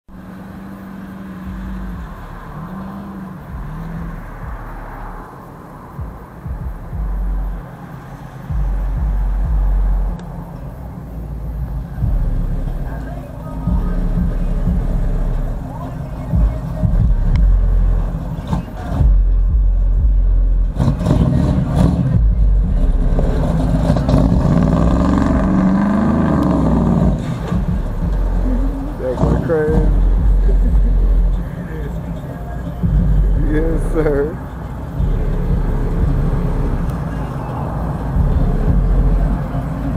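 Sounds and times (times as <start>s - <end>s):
car engine revving: 0.0s - 39.9s.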